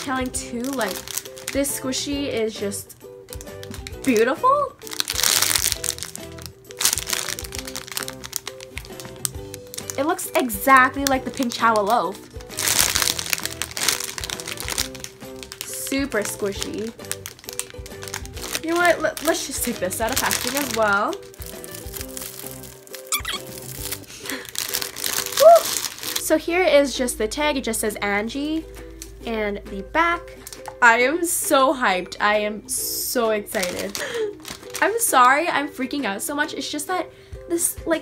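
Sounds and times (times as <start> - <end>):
plastic bag crinkling: 0.0 - 2.0, 3.3 - 26.4, 30.4 - 30.8, 33.5 - 35.4
background music: 0.0 - 38.0.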